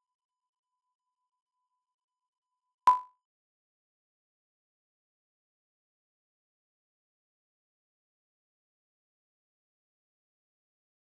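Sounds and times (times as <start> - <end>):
short beep: 2.9 - 3.1.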